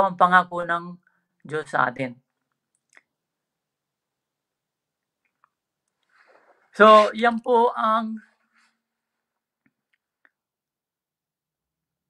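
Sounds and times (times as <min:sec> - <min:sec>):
man speaking: 0:06.8 - 0:08.2.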